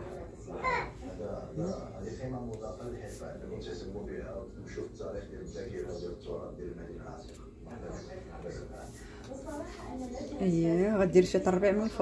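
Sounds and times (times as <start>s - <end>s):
woman talking quietly: 9.1s - 12.0s.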